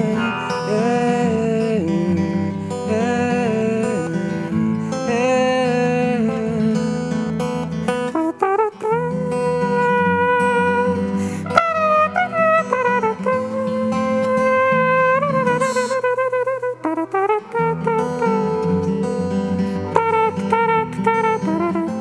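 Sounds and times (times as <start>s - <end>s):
acoustic guitar chords: 0.0s - 22.0s
wordless vocal melody: 0.0s - 22.0s.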